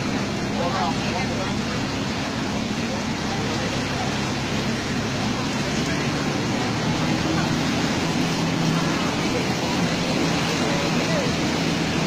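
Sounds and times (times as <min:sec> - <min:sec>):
steady rain hiss: 0:00.0 - 0:12.0.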